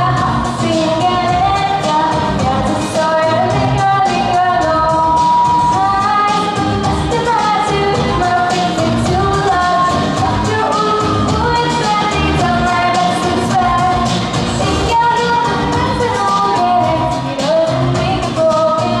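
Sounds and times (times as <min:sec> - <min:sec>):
girl singing into microphone: 0:00.0 - 0:19.0
pop backing track with beat: 0:00.0 - 0:19.0.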